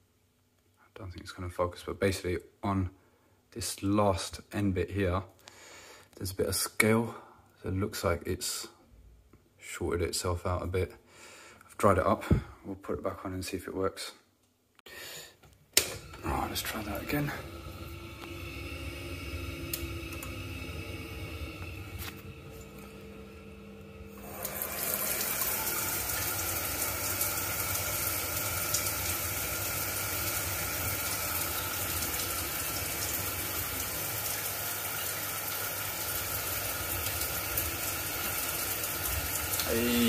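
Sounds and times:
faint hum: 15.8s - 25.7s
water tap running: 15.8s - 40.0s.

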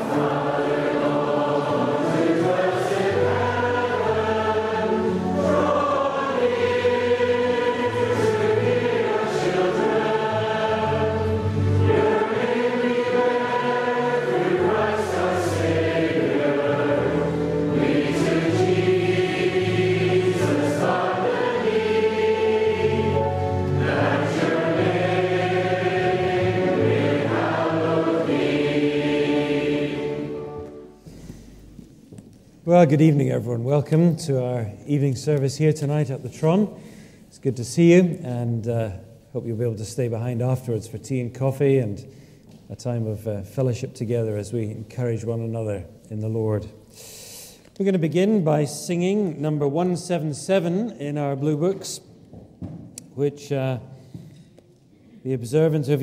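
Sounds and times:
choir singing held notes: 0.0s - 31.8s.

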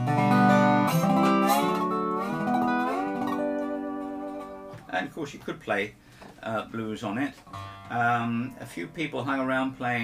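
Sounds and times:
slide guitar notes: 0.0s - 5.0s, 7.4s - 9.0s.

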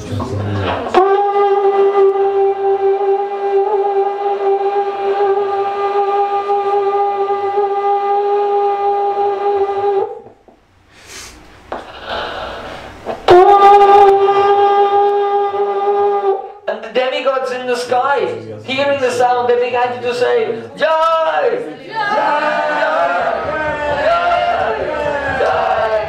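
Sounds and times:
conch shell blasts: 0.9s - 10.2s.

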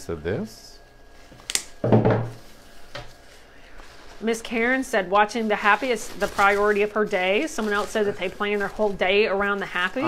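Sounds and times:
knock on wooden table: 1.8s - 2.4s.

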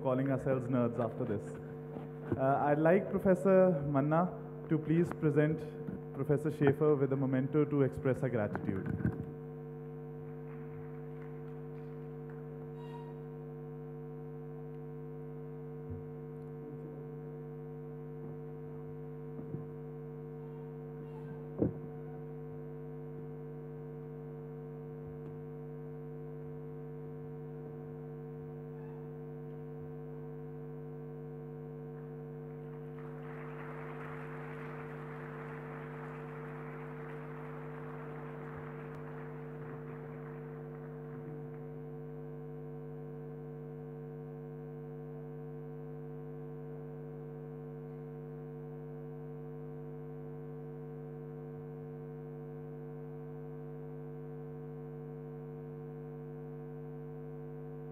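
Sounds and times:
electrical mains hum: 0.0s - 57.9s
audience applause: 32.6s - 41.8s.

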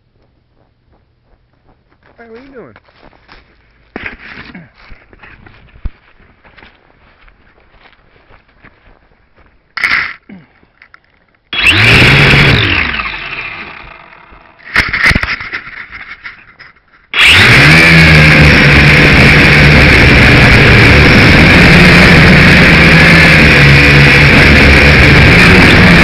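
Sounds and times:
quadcopter motors buzzing: 11.6s - 15.5s, 17.2s - 26.0s.

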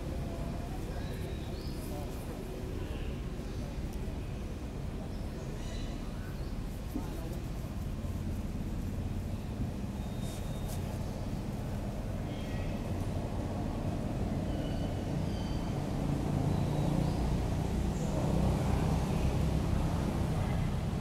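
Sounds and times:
steady low rumble: 6.4s - 16.6s.

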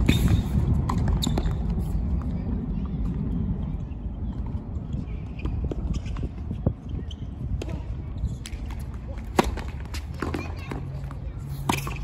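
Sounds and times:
steady low rumble: 0.0s - 9.9s.

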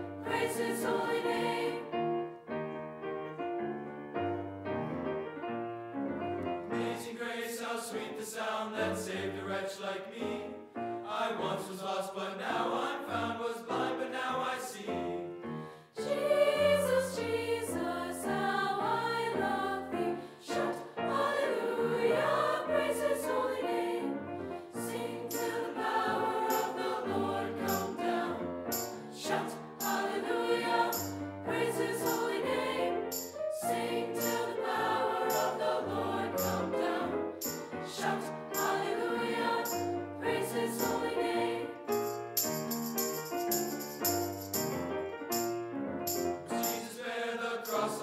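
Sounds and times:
mixed choir singing: 0.0s - 2.4s, 6.7s - 42.1s, 46.4s - 48.0s.

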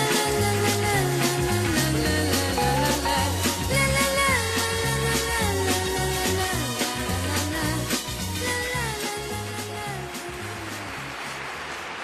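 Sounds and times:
pop band backing: 0.0s - 11.4s.

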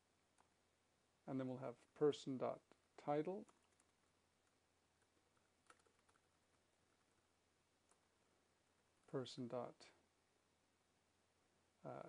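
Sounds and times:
faint keyboard typing: 0.3s - 0.6s, 3.3s - 8.1s.

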